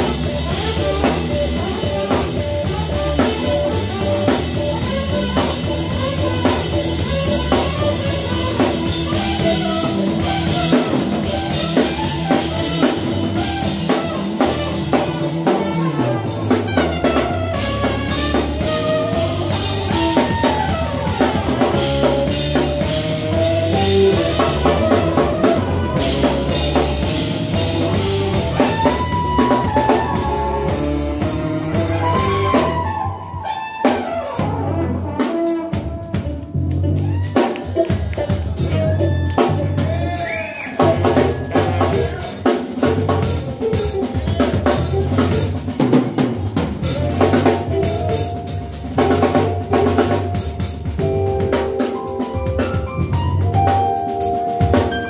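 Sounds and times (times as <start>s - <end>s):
drum-kit groove: 0.0s - 55.0s
live funk band playing: 0.0s - 55.0s
trumpet and saxophone melody: 0.0s - 55.0s.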